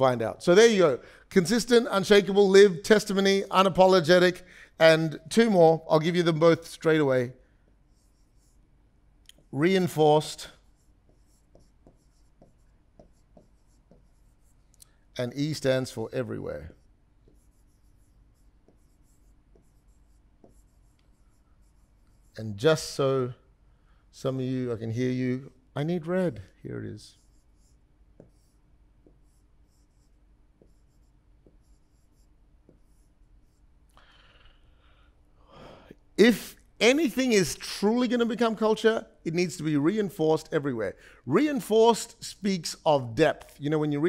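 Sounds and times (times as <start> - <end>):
stylus scratching on screen: 5.3 - 23.0, 26.3 - 33.9.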